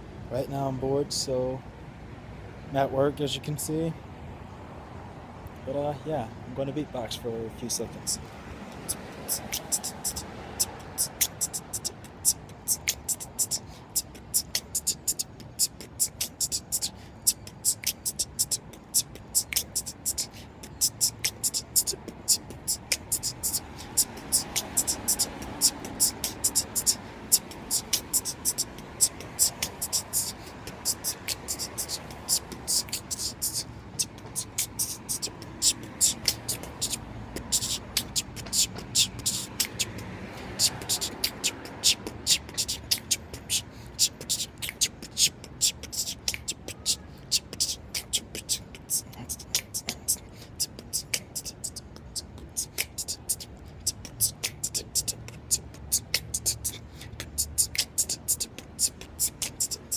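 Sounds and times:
man beatboxing: 5.8 - 59.9.

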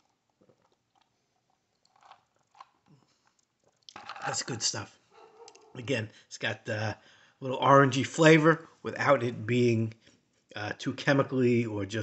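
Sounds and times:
person sipping a drink: 0.0 - 4.6.

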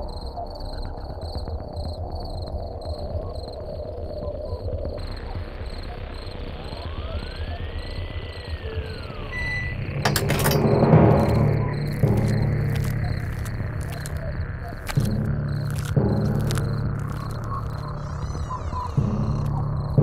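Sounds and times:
crickets chirping: 0.0 - 20.0
low rumble: 3.9 - 20.0.

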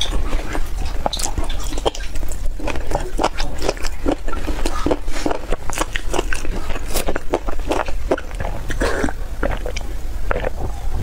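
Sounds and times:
wet chewing and biting: 0.0 - 11.0.

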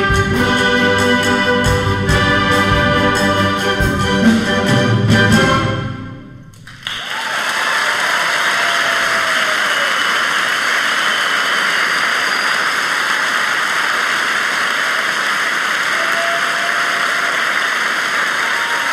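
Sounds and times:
audience applauding: 6.6 - 18.9.

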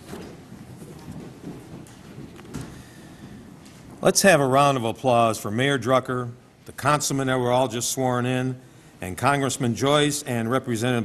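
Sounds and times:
faint clicks and rustles: 0.0 - 4.1.

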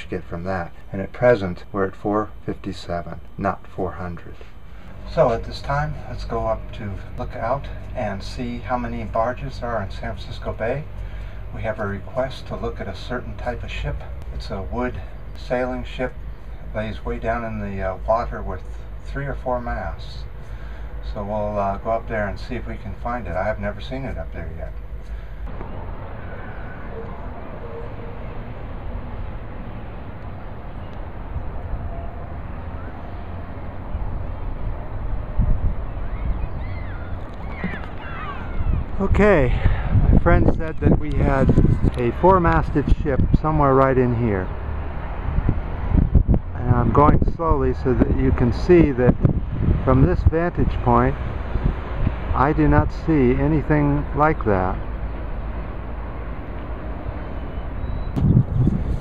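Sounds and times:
wind buffeting microphone: 33.9 - 54.5, 57.8 - 59.0
faint high sliding calls: 36.1 - 39.0.

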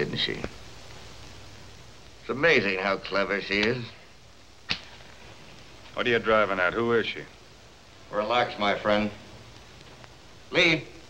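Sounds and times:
film soundtrack hiss: 0.0 - 11.0
sharp click: 4.7 - 4.9.

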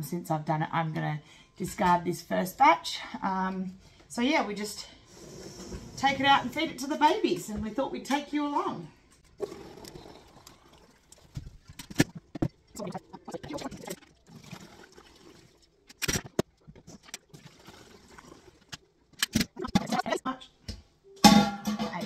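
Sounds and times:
milk pouring into bottles: 9.4 - 11.4, 13.2 - 15.8
metal can clinks and knocks: 21.2 - 22.0.

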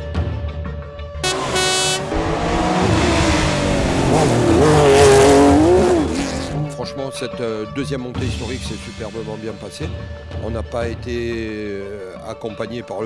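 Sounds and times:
background music: 0.0 - 13.0
rally car engine revving: 1.2 - 6.8.

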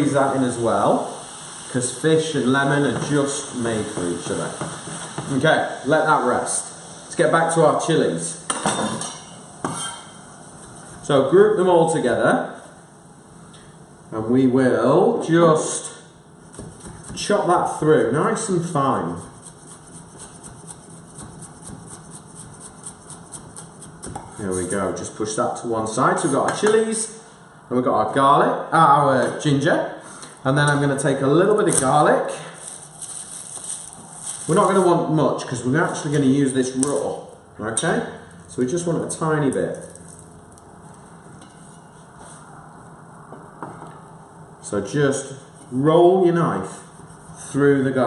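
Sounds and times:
frying pan sizzling: 0.0 - 8.5.

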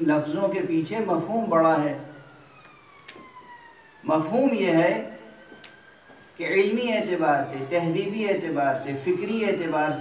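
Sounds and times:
faint siren wail: 0.0 - 10.0.

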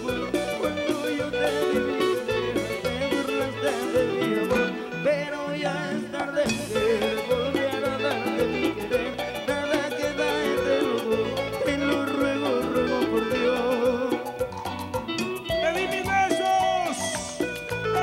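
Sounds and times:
latin dance band playing: 0.0 - 18.0.

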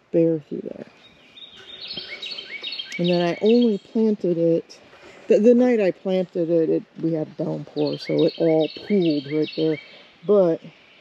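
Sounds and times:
songbirds singing: 0.0 - 11.0.

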